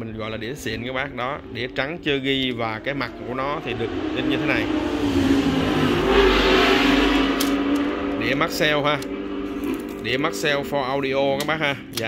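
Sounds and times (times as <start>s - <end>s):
vehicle engine revving: 0.1s - 12.0s.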